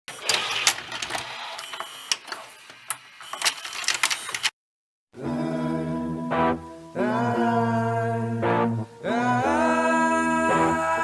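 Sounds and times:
mechanism clicking and clattering: 0.1 - 4.5
intro music with held chords: 5.2 - 11.0.

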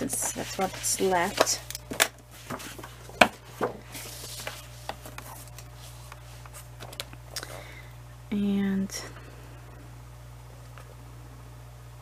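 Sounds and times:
paper rustling: 0.0 - 7.1.

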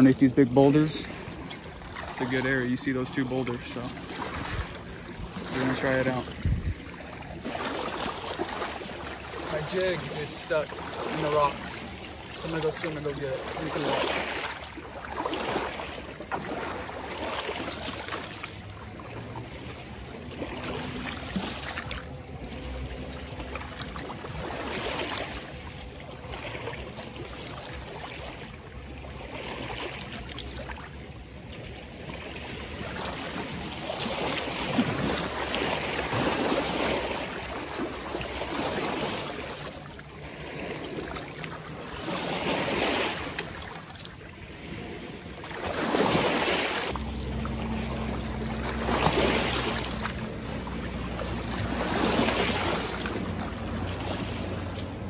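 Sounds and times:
jet ski motor hum: 0.0 - 55.0
waves lapping over rocks: 0.0 - 55.0.

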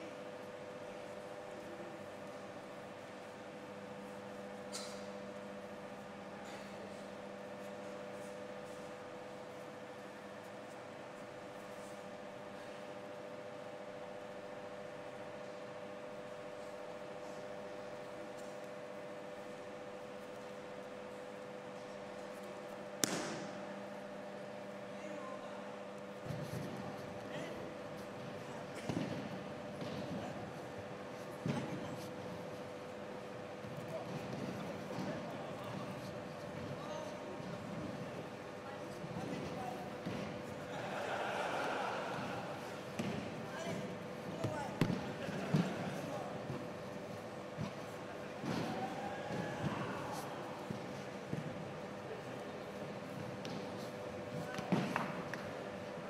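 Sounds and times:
low voices in a hall: 0.0 - 56.0
steady hum: 0.0 - 56.0
body slapping onto mats: 23.0 - 23.6.

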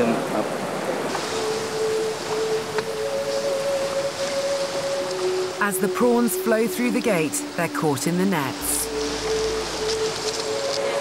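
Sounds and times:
water rushing through sluice gate: 0.0 - 11.0
music of long held notes: 1.1 - 11.0.

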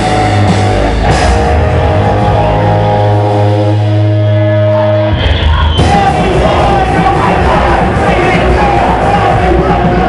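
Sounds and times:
distorted electric guitar note: 0.0 - 10.0.

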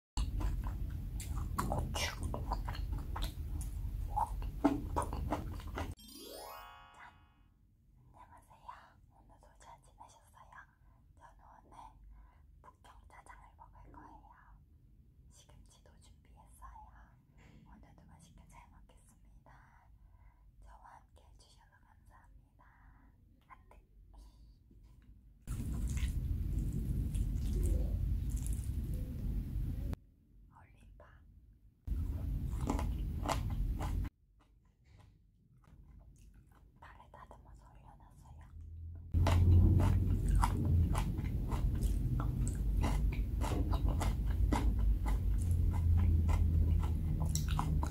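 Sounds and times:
woman whispering: 8.1 - 14.6, 15.3 - 20.0, 20.6 - 24.7, 30.5 - 31.3, 36.8 - 38.6.

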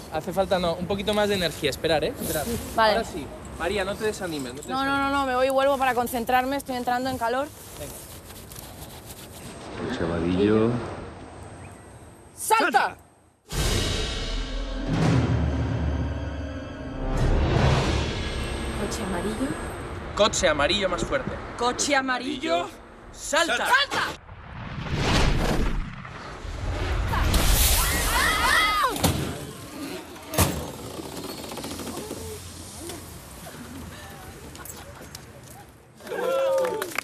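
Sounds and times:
people screaming: 27.1 - 29.3, 36.0 - 37.0.

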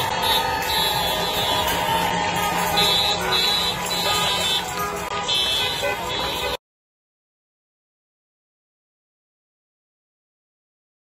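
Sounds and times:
car horns honking: 0.0 - 6.6
cars passing: 0.0 - 6.6
crowd cheering: 0.0 - 6.6.

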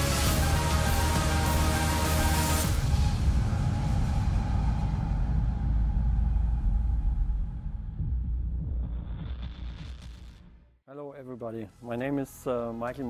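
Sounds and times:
deep rumbling cinematic drone: 0.0 - 10.8.

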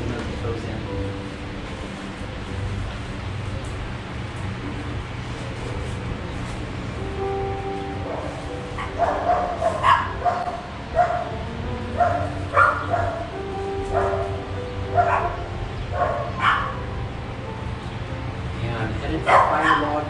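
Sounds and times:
soft background music: 0.0 - 20.0
dog barking: 8.1 - 11.3, 12.0 - 13.3, 13.9 - 16.8, 19.2 - 20.0.

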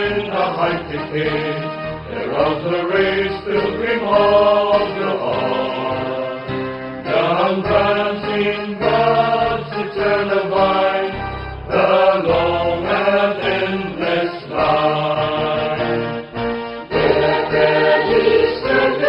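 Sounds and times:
group singing a hymn: 0.0 - 19.0
musical backing: 0.0 - 19.0.

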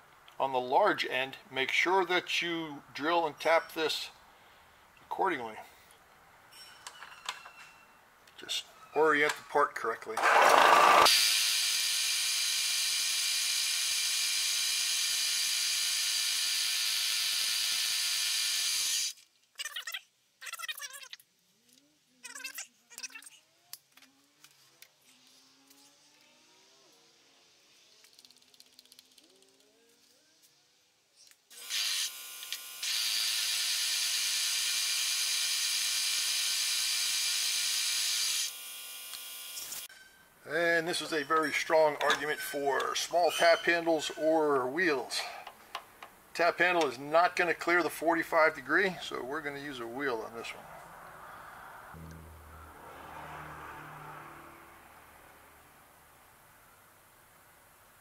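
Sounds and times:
small squeaks: 6.5 - 8.1, 19.5 - 26.4, 39.6 - 40.4, 41.0 - 44.2.

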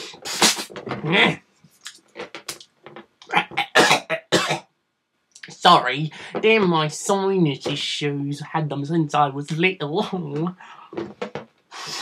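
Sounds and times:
person coughing: 3.3 - 4.7.

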